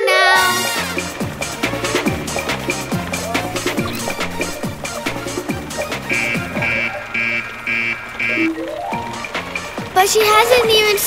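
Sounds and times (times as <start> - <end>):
rising run of notes: 0.0 - 10.8
cartoon background music: 0.0 - 11.0
electronic alarm beeping: 5.8 - 8.8.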